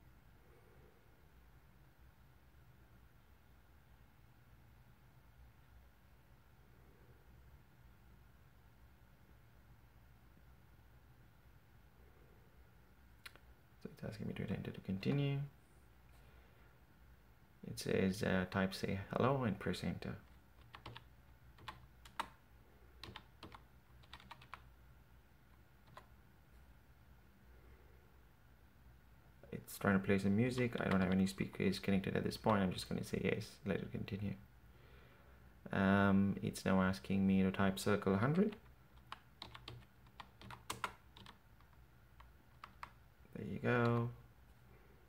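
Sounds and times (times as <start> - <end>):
computer keyboard clicks: 20.6 - 22.4, 23.0 - 24.6, 38.6 - 43.0.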